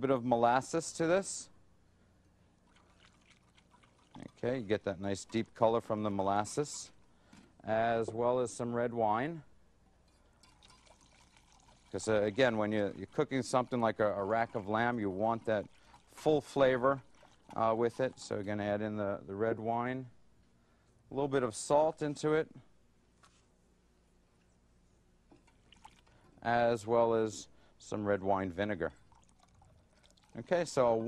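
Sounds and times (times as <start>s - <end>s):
whisk stirring in a pan: 2.7s - 4.4s, 10.5s - 18.3s
wine pouring into a pan: 10.4s - 18.3s, 29.0s - 31.0s.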